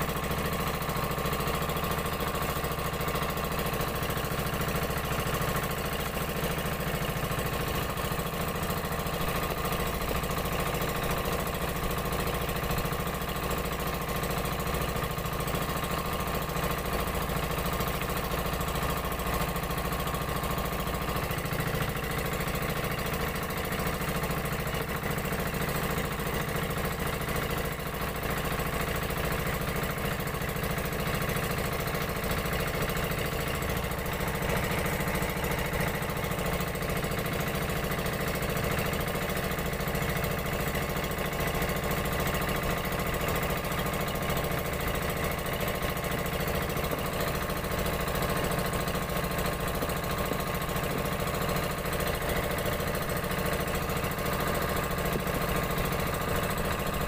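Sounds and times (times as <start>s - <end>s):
boat engine running steadily: 0.0s - 57.0s.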